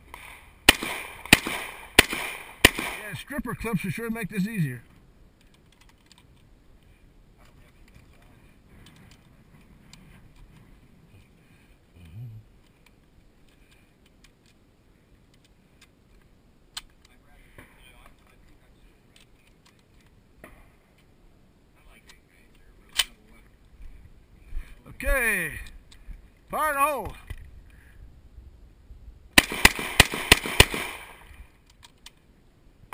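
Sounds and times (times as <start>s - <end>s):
metallic clicks of cartridges loading: 5.4s - 6.5s.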